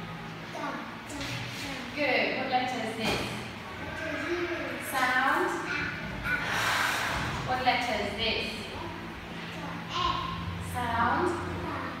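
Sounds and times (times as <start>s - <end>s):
young child speaking: 0.5s - 2.0s, 3.8s - 6.8s, 8.7s - 10.6s, 11.2s - 12.0s
woman speaking: 1.8s - 3.6s, 4.8s - 5.6s, 7.4s - 8.8s, 10.6s - 12.0s.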